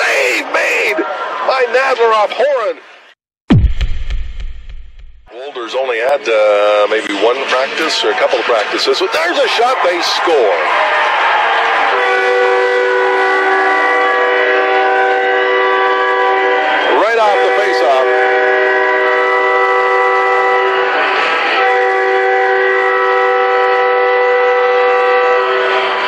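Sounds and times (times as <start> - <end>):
arena goal horn blasts: 11.9 - 26.0.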